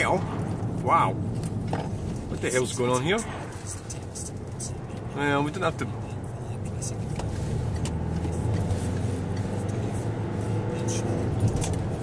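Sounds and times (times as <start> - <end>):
engine and tyre drone: 0.0 - 12.0
passing cars whooshing: 0.0 - 12.0.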